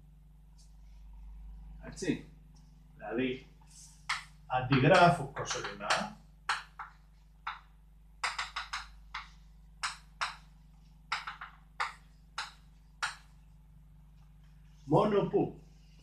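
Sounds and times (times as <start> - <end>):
low hum: 0.0 - 8.2
chalk tapping on blackboard: 3.9 - 13.4.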